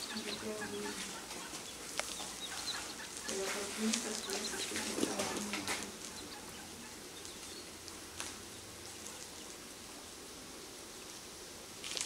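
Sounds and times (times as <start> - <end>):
ducklings peeping: 0.0 - 10.2.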